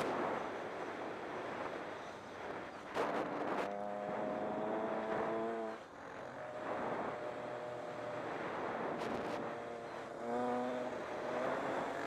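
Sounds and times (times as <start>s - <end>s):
two-stroke engine at high revs: 0.0s - 12.0s
wind rushing over microphone: 0.0s - 12.0s.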